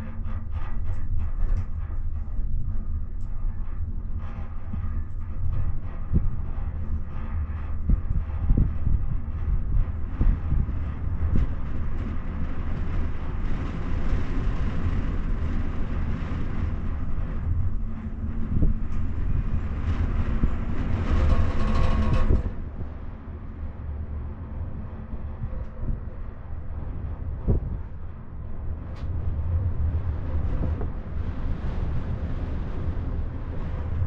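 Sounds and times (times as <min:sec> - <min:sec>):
gondola cabin rumble: 0:00.0 - 0:34.0
rolling whir over sheave wheels: 0:04.4 - 0:24.8.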